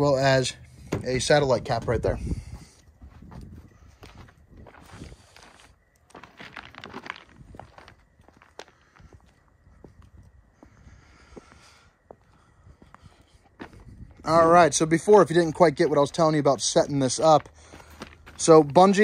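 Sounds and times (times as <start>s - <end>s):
footsteps on asphalt: 1.8s - 14.2s, 16.6s - 19.0s.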